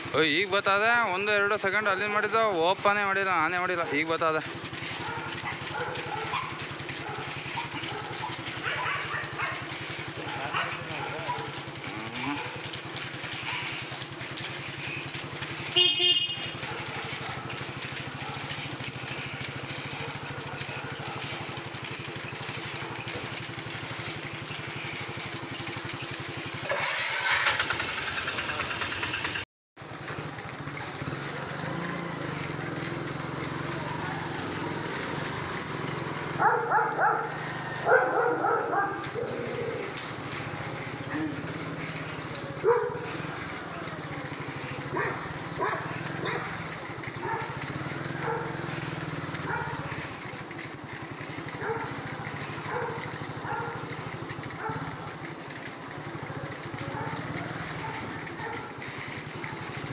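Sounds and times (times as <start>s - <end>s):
motorcycle engine running: 0.0s - 59.9s
horn toot: 15.7s - 16.5s.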